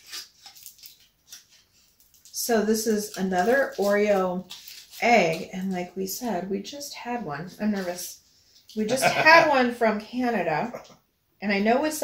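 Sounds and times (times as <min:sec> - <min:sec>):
foil wrapper crinkling: 0:00.0 - 0:05.9.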